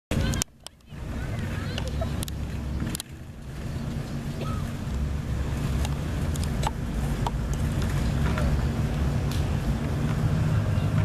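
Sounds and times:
vehicle engine rumble: 0.1 - 11.0.

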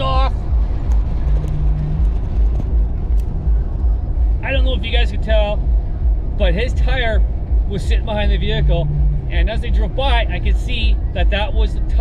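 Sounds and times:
engine and road noise in car: 0.0 - 12.0.

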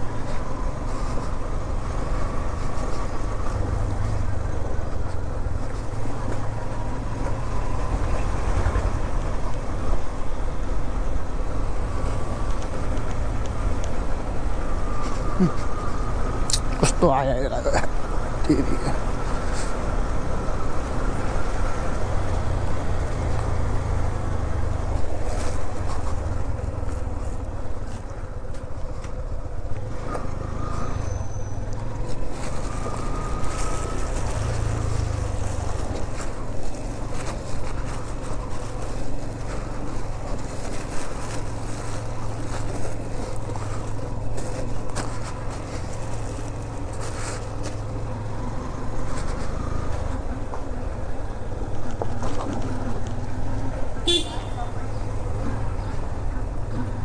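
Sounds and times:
motorcycle engine running: 51.8 - 57.0.

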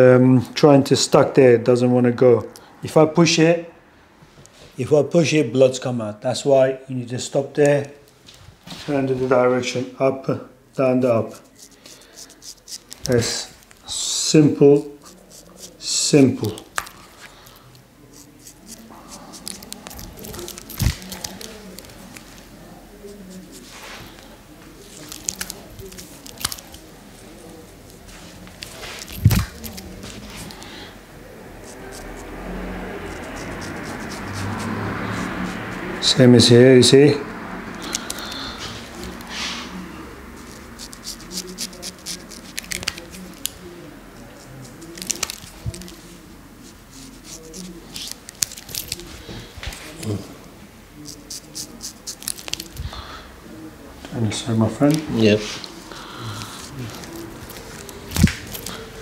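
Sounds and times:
razor scraping beard stubble: 10.8 - 22.4, 24.9 - 30.8, 31.6 - 36.1, 37.8 - 43.6, 44.3 - 49.1, 51.0 - 52.8, 54.9 - 59.0
shaving lather squishing: 10.8 - 24.2, 24.8 - 30.8, 31.6 - 36.1, 37.6 - 43.6, 44.3 - 49.2, 51.0 - 52.8, 54.8 - 59.0.

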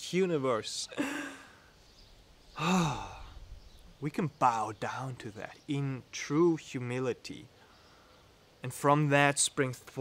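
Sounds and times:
man sighing: 0.9 - 1.7, 2.6 - 3.5.

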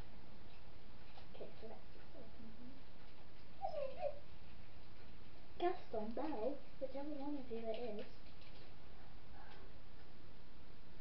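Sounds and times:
dog whining: 3.6 - 4.3.

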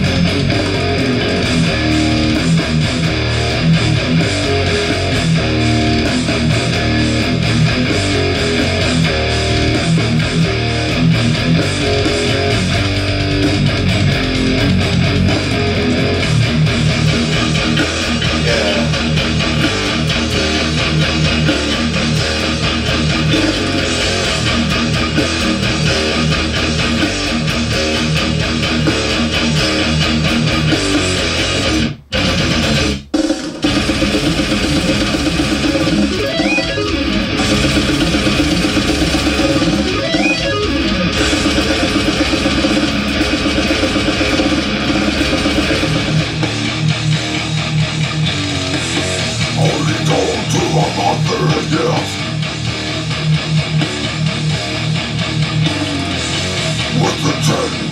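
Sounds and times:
death metal music: 0.0 - 57.9.

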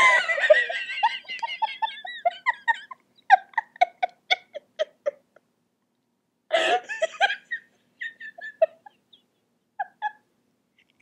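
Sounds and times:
person giggling: 0.0 - 5.4, 6.5 - 10.3.

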